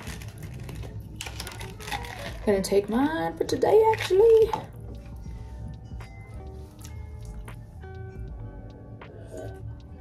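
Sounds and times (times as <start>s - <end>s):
background music with bass: 4.4s - 10.0s.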